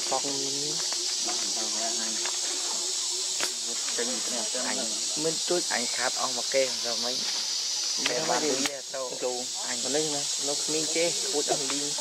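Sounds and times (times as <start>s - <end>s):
insects droning: 0.0s - 12.0s
people talking quietly: 0.0s - 12.0s.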